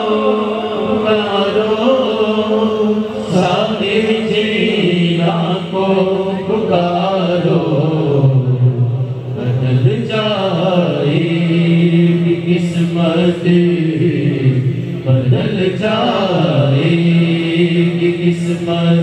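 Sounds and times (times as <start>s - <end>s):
men chanting a devotional song: 0.0s - 19.0s.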